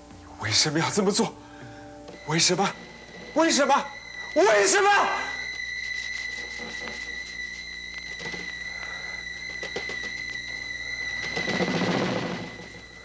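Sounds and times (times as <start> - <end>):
high-pitched whine: 0.0 - 13.0.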